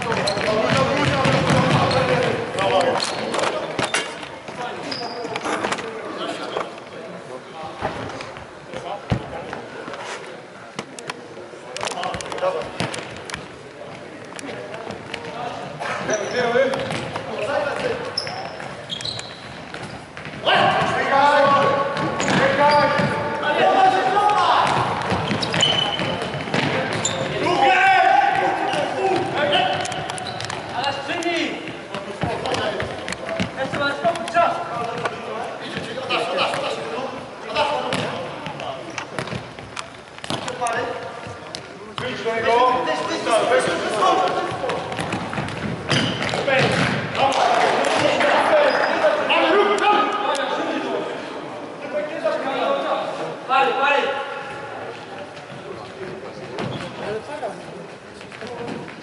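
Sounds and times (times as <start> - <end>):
murmur of voices: 0.0 - 59.0.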